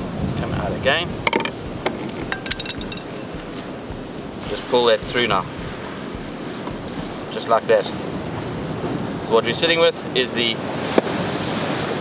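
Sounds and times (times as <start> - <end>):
metal tackle clicking and clinking: 1.3 - 3.6.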